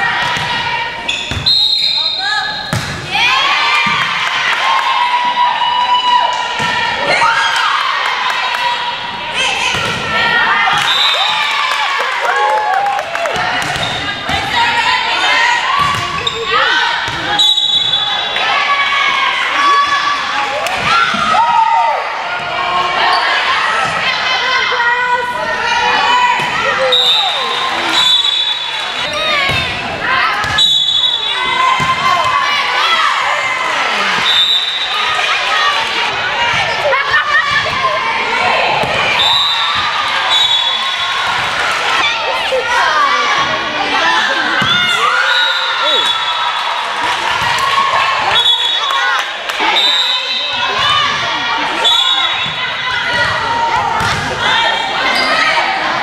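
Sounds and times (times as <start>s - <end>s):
players calling: 0.0s - 56.0s
voices shouting: 0.0s - 56.0s
referee's whistle: 1.1s - 2.8s, 10.8s - 11.4s, 17.3s - 18.4s, 26.8s - 28.8s, 30.5s - 31.6s, 34.2s - 35.0s, 39.1s - 41.2s, 45.0s - 46.6s, 48.3s - 49.0s, 49.6s - 50.7s, 51.8s - 52.5s.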